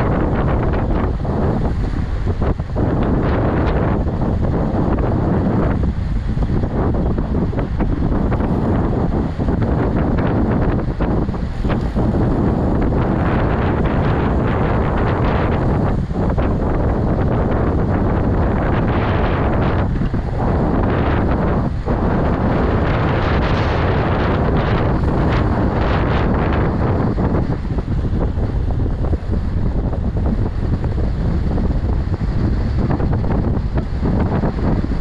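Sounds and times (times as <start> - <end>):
wind rushing over microphone: 0.0 - 35.0.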